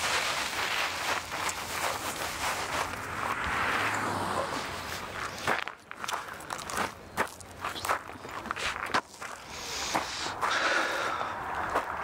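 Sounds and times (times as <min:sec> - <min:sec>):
rushing noise: 0:00.0 - 0:05.5
footsteps crunching on gravel: 0:00.0 - 0:12.0.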